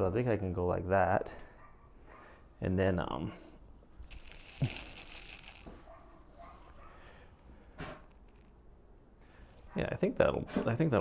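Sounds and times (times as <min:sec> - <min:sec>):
clothing rustling: 0:04.0 - 0:06.9.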